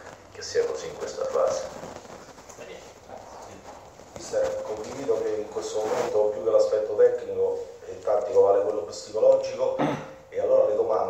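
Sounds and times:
faint room noise: 0.0s - 11.0s
person speaking: 0.0s - 11.0s.

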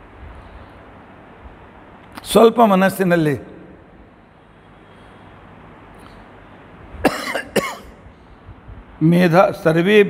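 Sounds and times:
man coughing: 7.0s - 8.0s.

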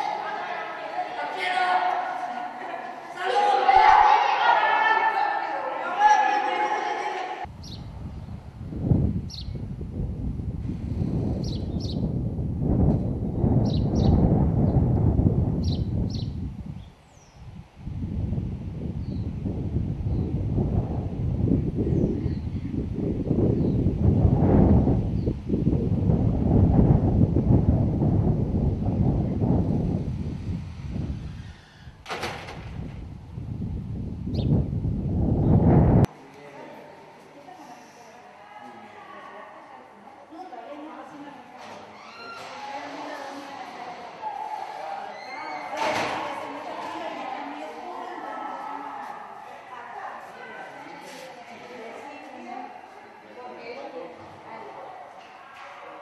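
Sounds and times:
voices echoing in a gym: 0.0s - 7.5s, 36.0s - 56.0s
wind buffeting microphone: 7.4s - 36.1s.

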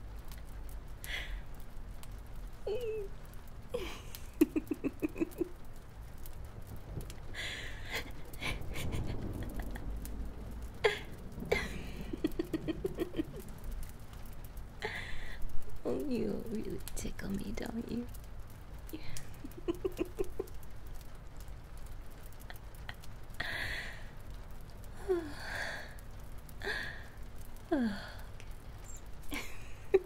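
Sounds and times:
woman giggling: 3.8s - 5.6s, 7.7s - 9.8s, 10.9s - 13.5s, 19.0s - 20.6s, 29.3s - 30.0s.

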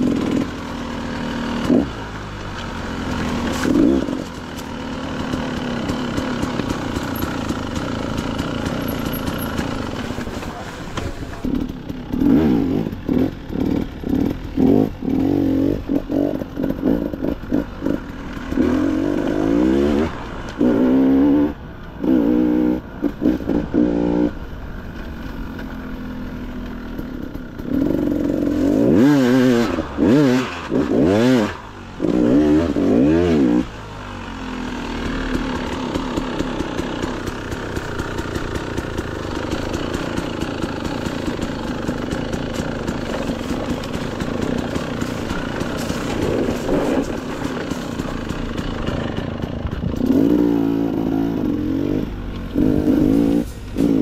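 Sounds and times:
dirt bike engine revving: 0.0s - 24.6s, 25.2s - 54.0s.

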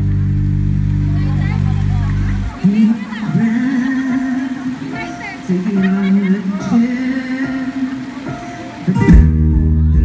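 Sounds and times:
music holding a low chord: 0.0s - 5.8s, 6.8s - 10.0s.

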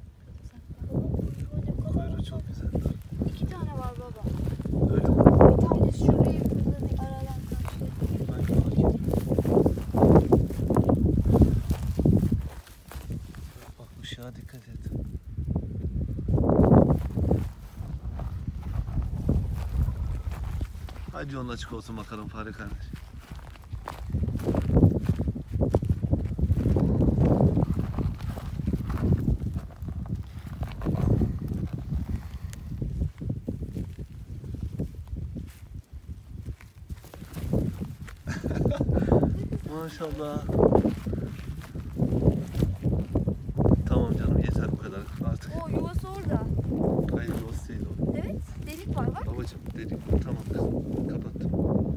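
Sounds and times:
footsteps through dry grass: 0.0s - 51.9s.

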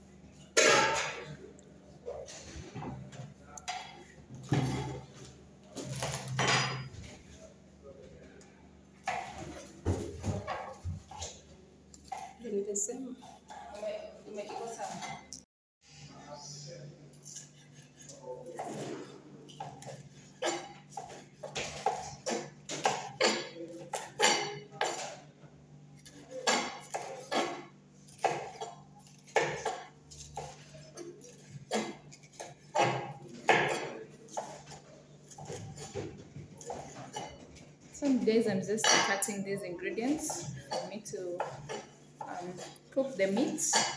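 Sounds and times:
knife chopping on wooden board: 19.5s - 25.2s, 26.1s - 37.4s, 40.3s - 43.9s.

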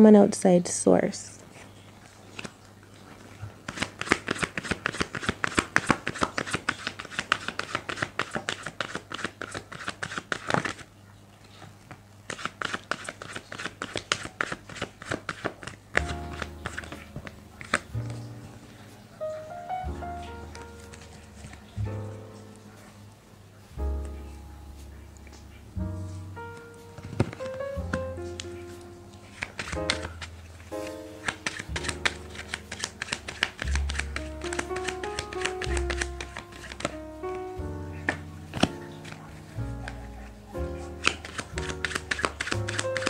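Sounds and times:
soft background music: 0.0s - 1.2s, 15.9s - 43.0s
cards being shuffled: 2.0s - 10.9s, 11.6s - 19.6s, 20.2s - 21.8s, 26.2s - 43.0s.

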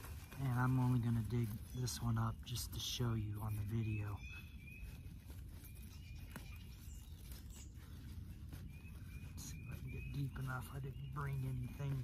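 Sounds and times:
bird chirping: 0.0s - 12.0s
hands digging in soil and leaves: 0.0s - 12.0s.

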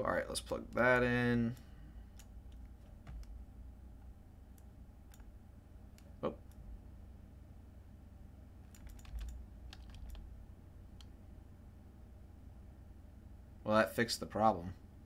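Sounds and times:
faint low hum: 0.0s - 15.0s
keyboard and mouse clicks: 0.6s - 3.4s, 8.7s - 10.3s.

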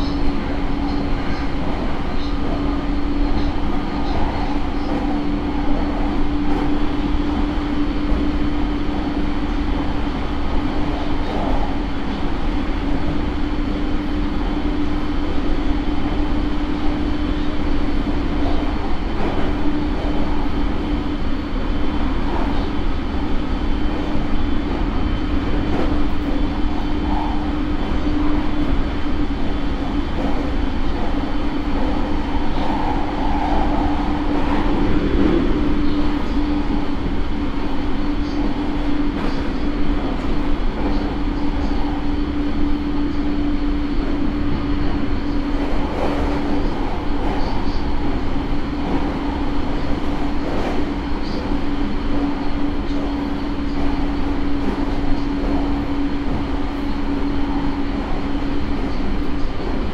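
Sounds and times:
train motor hum: 0.0s - 59.9s
wheels rumbling on rail: 0.0s - 59.9s.

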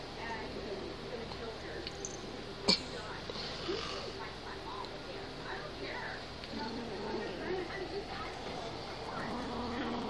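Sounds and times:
kitten growling: 6.5s - 10.0s.

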